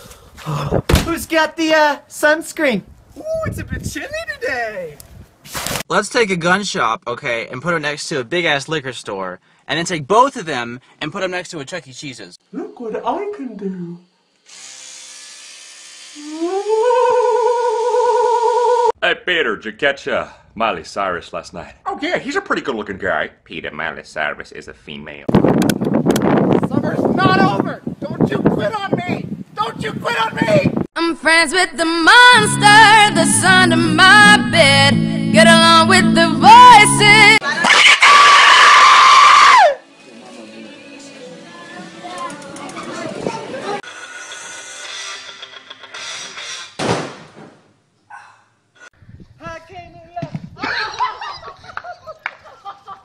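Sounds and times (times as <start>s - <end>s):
person humming a wobbling note: 16.2s - 18.9s
person singing: 16.2s - 18.9s, 31.0s - 37.4s
loud raspy scream: 37.4s - 39.8s.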